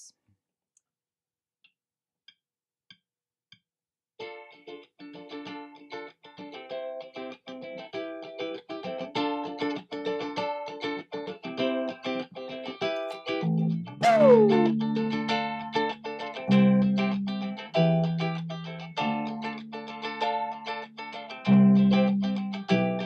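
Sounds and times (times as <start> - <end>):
guitar picking a riff: 8.9 - 23.0.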